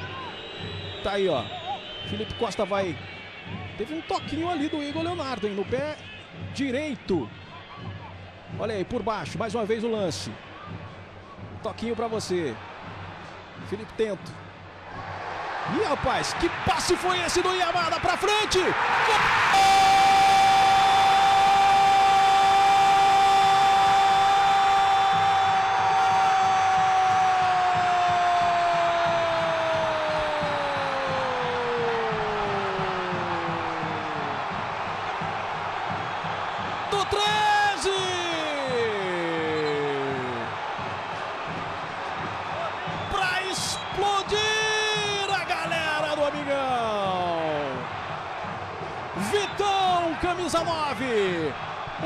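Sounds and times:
stadium crowd cheering: 0:00.0 - 0:52.0
commentator shouting goal: 0:36.9 - 0:40.5, 0:43.1 - 0:47.8, 0:49.2 - 0:51.6.

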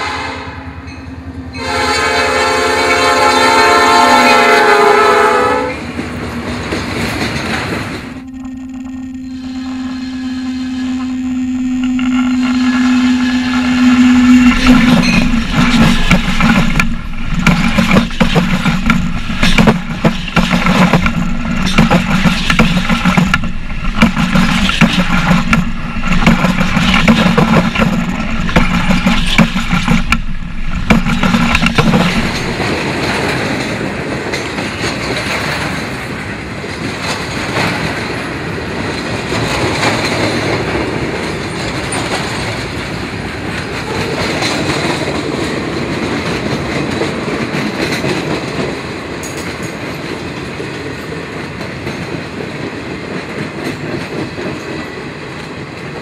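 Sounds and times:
train horn: 0:00.0 - 0:00.9, 0:01.5 - 0:05.9, 0:08.1 - 0:17.2
train wheels clickety-clack: 0:01.7 - 0:08.2, 0:12.4 - 0:56.0
steady hum: 0:08.1 - 0:32.7.

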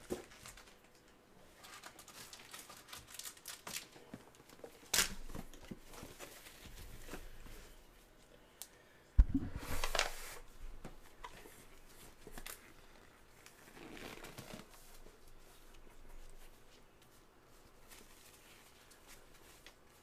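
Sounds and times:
packaging crinkling and tearing: 0:00.0 - 0:01.0, 0:01.6 - 0:05.6.

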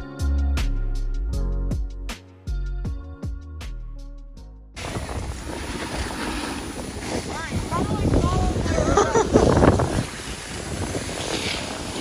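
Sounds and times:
skis sliding on snow: 0:04.8 - 0:12.0
wind on microphone: 0:04.8 - 0:12.0.

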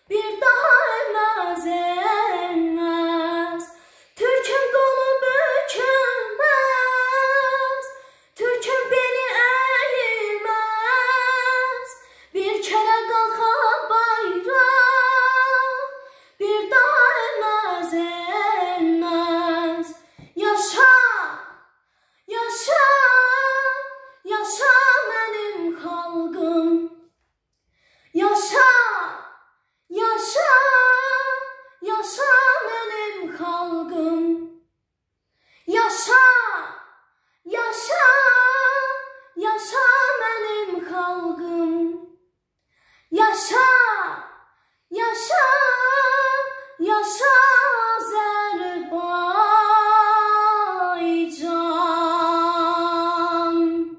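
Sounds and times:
girl singing unaccompanied: 0:00.0 - 0:21.6, 0:22.3 - 0:27.0, 0:28.2 - 0:29.2, 0:29.9 - 0:34.6, 0:35.7 - 0:36.8, 0:37.5 - 0:42.1, 0:43.1 - 0:53.9.

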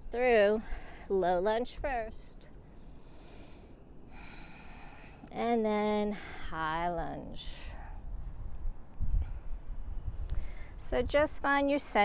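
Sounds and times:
woman breathing: 0:02.6 - 0:05.3, 0:09.1 - 0:10.8.

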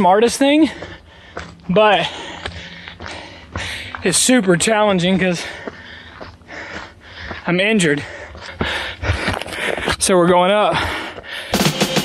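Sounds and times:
man breathing hard: 0:00.6 - 0:04.1, 0:05.1 - 0:10.0, 0:10.6 - 0:11.8.

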